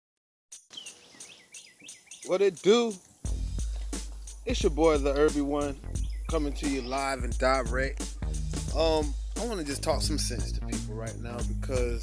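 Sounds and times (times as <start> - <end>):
birds chirping faintly: 0.5 - 10.0.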